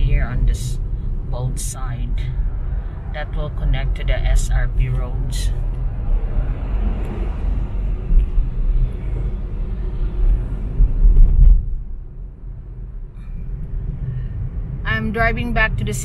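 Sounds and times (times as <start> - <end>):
car cabin road rumble: 0.0 - 16.0
tyre and wind noise: 5.7 - 12.1.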